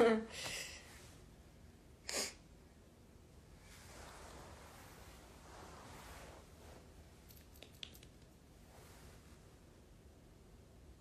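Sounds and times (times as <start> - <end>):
soft hiss: 0.0 - 11.0
small clicks: 7.3 - 8.3.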